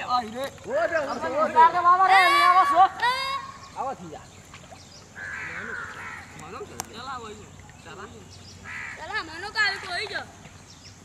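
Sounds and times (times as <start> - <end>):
harsh bird call: 5.2 - 6.6.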